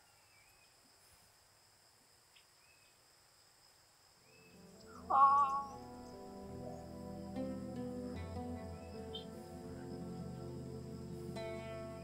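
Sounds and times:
bird chirps: 0:04.2 - 0:07.3, 0:08.0 - 0:12.0
background music: 0:04.4 - 0:12.0.

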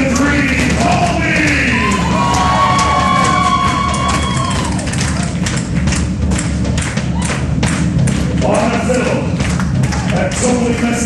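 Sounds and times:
steady bass: 0:00.0 - 0:11.0.

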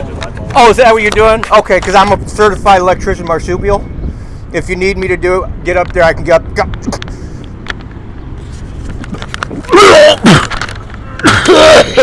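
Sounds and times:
distant road traffic: 0:00.0 - 0:12.0.

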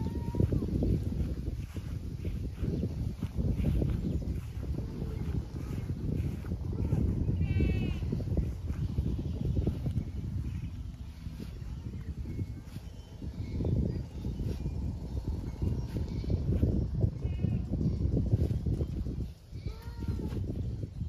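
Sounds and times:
farm animal bleating: 0:00.0 - 0:00.4, 0:06.6 - 0:08.4, 0:17.1 - 0:17.8, 0:19.6 - 0:20.3
wind buffeting microphone: 0:00.0 - 0:21.0.

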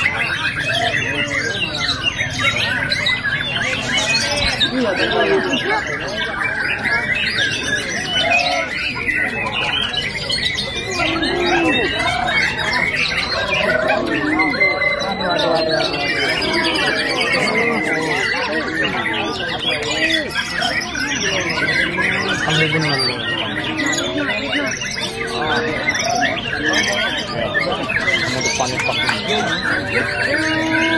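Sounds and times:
chorus of songbirds whistling: 0:00.0 - 0:30.9.

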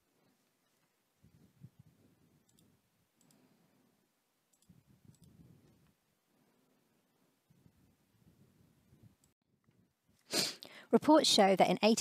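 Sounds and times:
soft clicks: 0:02.4 - 0:03.5, 0:04.5 - 0:06.0.

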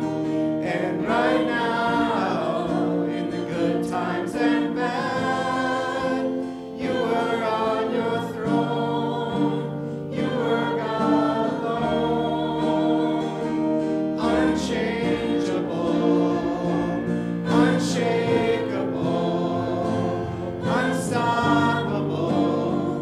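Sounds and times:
acoustic guitar: 0:00.0 - 0:23.0
voices singing in harmony: 0:00.0 - 0:23.0.

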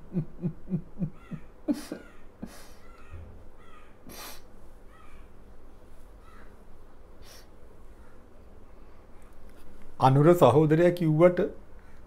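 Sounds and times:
crow cawing: 0:01.2 - 0:04.1, 0:04.9 - 0:05.4, 0:06.2 - 0:06.6.

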